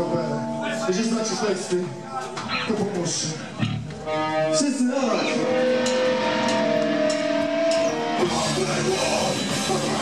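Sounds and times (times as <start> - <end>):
full band playing: 0.0 - 10.0.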